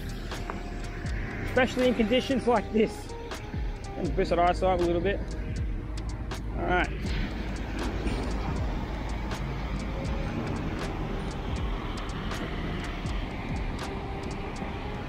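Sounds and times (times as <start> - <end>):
background music: 0.0 - 15.0
city traffic rumble: 0.0 - 15.0.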